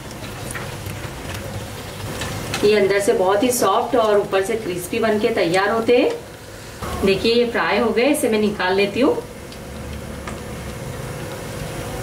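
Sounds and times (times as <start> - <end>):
food deep-frying in oil: 0.0 - 12.0.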